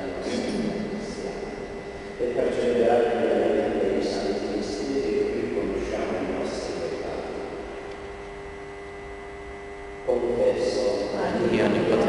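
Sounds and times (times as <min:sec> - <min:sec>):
room tone hum and hiss: 0:00.0 - 0:12.0.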